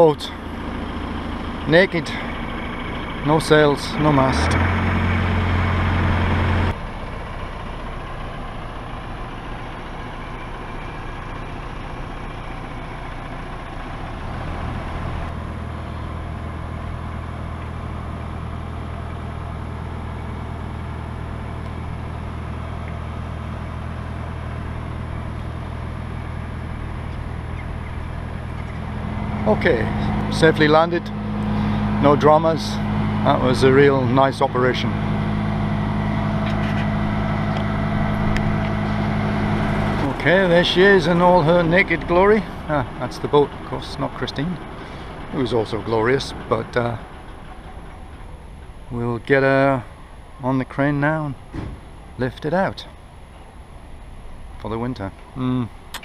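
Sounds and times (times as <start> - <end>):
crane engine humming: 0.0 - 56.0.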